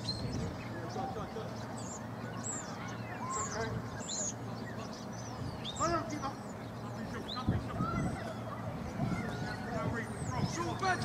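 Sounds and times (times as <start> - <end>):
open-air ambience: 0.0 - 11.0.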